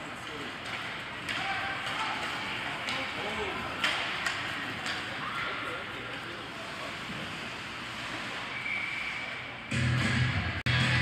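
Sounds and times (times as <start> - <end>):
skates and sticks on ice: 0.0 - 9.3.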